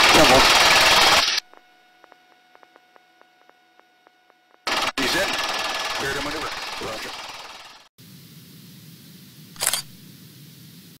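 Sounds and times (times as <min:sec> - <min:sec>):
faint steady low hum: 0:08.0 - 0:11.0.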